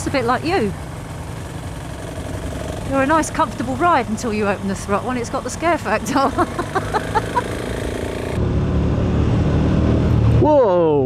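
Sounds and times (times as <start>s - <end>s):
deep motorcycle engine running: 0.0s - 10.4s
motorcycle engine cruising: 0.0s - 10.6s.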